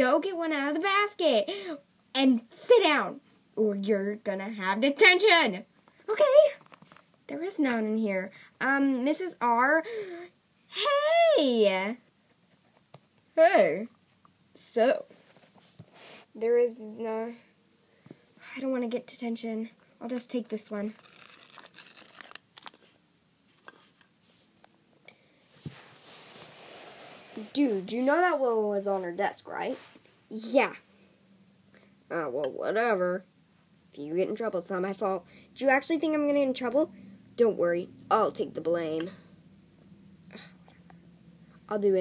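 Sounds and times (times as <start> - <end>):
person speaking: 7.3 - 12.0, 27.3 - 30.9
soft breathy hiss: 8.2 - 8.7, 9.7 - 11.0, 14.6 - 18.8, 23.7 - 32.1, 35.2 - 35.7
rustling of plastic toys and paper: 20.1 - 24.5.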